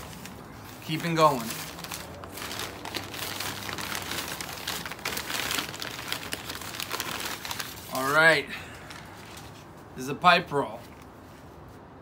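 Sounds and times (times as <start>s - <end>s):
packing paper rustling: 0.0s - 9.7s.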